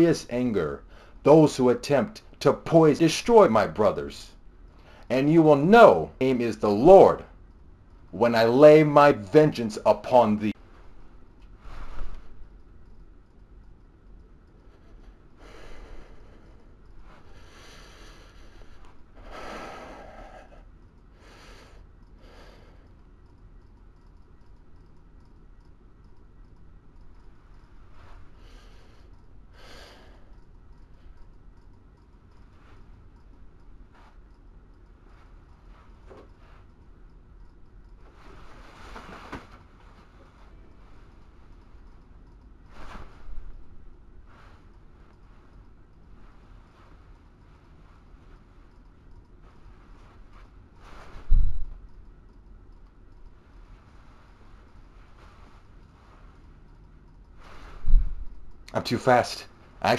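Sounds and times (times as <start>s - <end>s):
low steady hum: 0.0s - 59.9s
man breathing: 14.6s - 23.0s, 28.2s - 30.8s.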